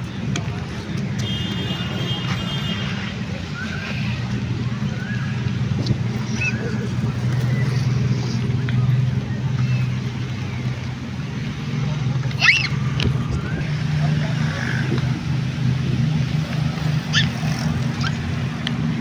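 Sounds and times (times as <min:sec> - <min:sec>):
car and motorcycle engines droning: 0:00.0 - 0:19.0.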